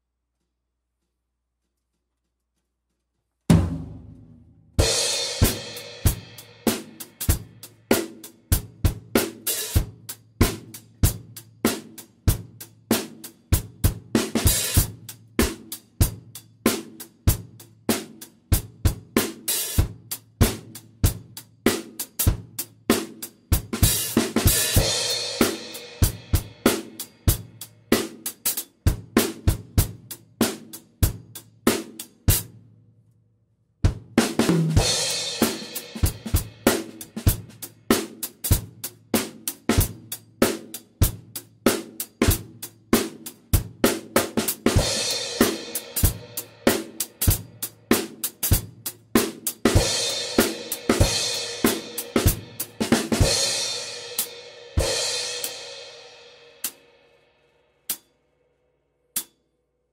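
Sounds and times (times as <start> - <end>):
drum kit groove: 3.4 - 32.6, 33.8 - 56.8.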